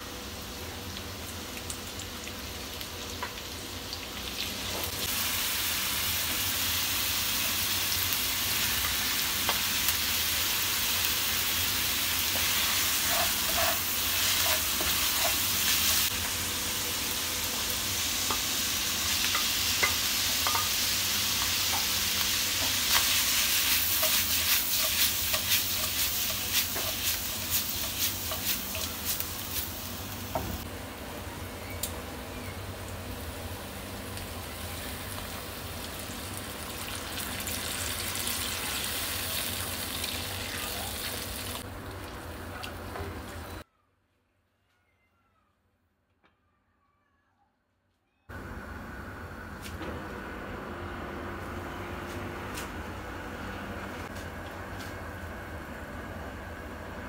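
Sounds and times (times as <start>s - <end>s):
food sizzling in hot oil: 0.1s - 30.7s, 32.9s - 41.6s.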